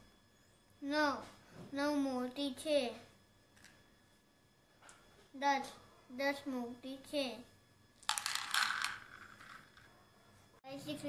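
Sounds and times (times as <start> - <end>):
beads clattering into a bowl: 8.0 - 9.9.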